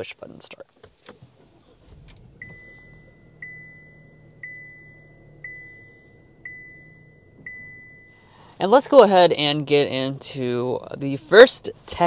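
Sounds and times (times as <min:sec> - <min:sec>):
car engine idling: 0:00.9 - 0:12.0
dashboard chime: 0:02.4 - 0:08.3.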